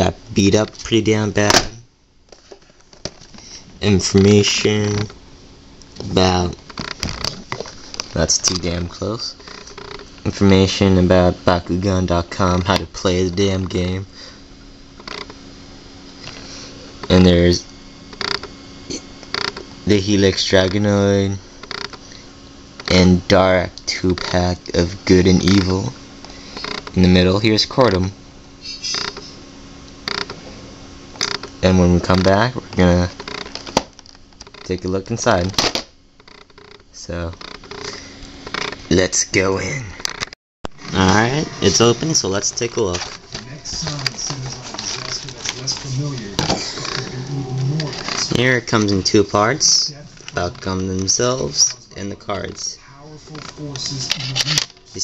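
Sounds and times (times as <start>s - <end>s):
cardboard packaging creaking: 6.5s - 8.7s, 9.3s - 10.1s, 15.0s - 15.4s, 18.2s - 18.5s, 19.3s - 19.7s, 21.6s - 22.1s, 30.0s - 30.4s, 31.2s - 31.5s, 33.2s - 34.8s, 36.2s - 38.8s, 40.1s - 49.2s
cardboard crackle: 42.6s - 47.1s.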